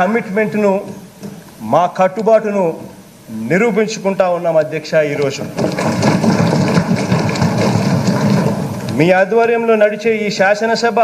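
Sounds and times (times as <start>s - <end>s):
people thumping desks: 5.3s - 9.0s.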